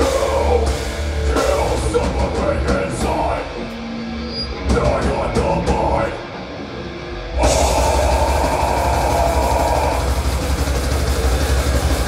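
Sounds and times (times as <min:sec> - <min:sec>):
metal band playing live: 0:00.0 - 0:12.0.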